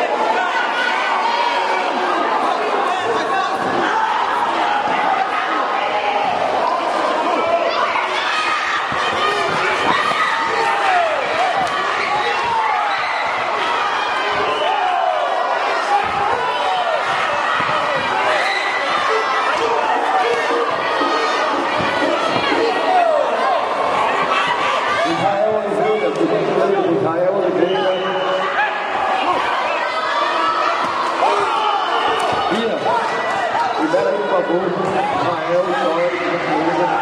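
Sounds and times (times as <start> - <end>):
crowd shouting and cheering: 0.0 - 37.0.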